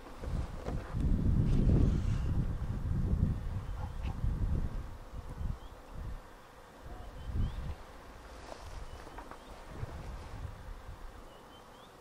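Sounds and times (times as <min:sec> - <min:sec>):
wind buffeting microphone: 0:00.0 - 0:11.3
faint high bird chirps: 0:05.4 - 0:05.8, 0:06.9 - 0:07.7, 0:11.2 - 0:12.0
footsteps through long grass: 0:07.6 - 0:10.8.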